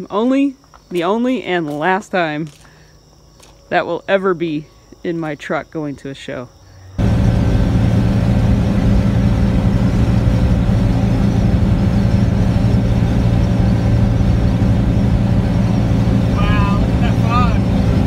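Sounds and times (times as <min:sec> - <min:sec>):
truck engine and road noise: 0:06.9 - 0:18.0.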